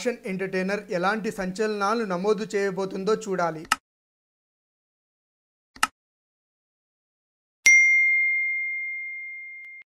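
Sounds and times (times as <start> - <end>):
bell ding: 7.7 - 9.9.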